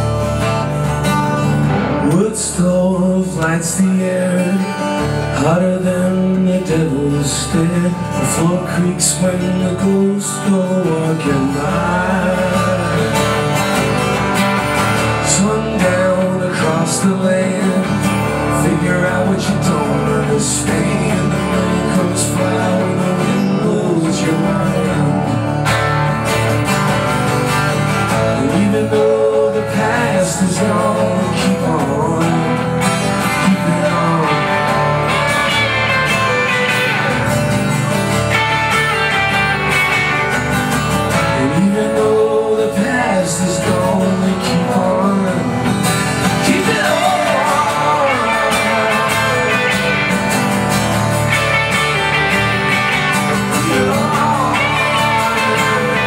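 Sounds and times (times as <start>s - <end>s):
acoustic guitar strummed: 0.0s - 56.0s
electric guitar through amp: 0.0s - 56.0s.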